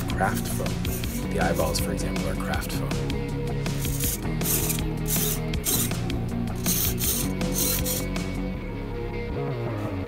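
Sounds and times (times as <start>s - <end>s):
background music: 0.0s - 10.0s
small servos buzzing: 3.7s - 8.3s.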